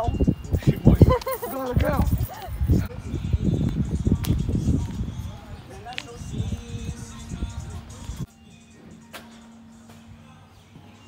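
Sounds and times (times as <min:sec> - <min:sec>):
young men laughing loudly: 0:00.6 - 0:03.0.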